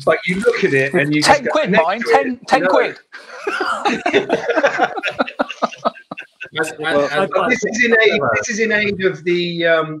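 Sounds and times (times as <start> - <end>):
men speaking: 0.0 - 10.0
men laughing: 0.2 - 8.5.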